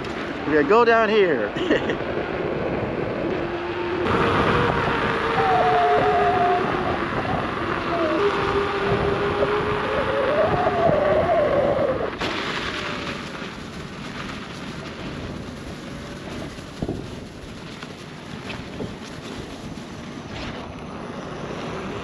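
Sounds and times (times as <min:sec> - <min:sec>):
rushing ride noise: 0:00.0 - 0:22.0
electric motor whine: 0:02.5 - 0:12.2.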